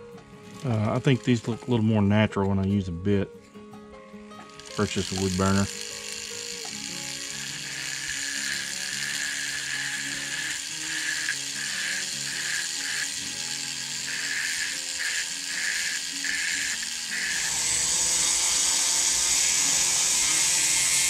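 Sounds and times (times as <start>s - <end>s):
rotary tool grinding wood: 0.0s - 2.1s, 4.4s - 21.0s.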